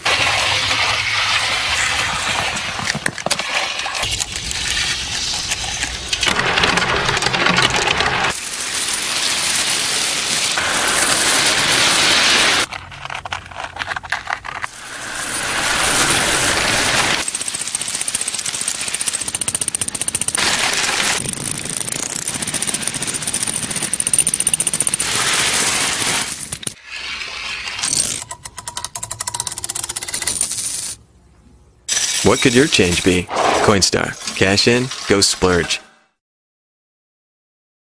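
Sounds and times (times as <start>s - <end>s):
coins clattering: 4.4s - 12.7s, 14.6s - 26.8s, 27.8s - 31.0s.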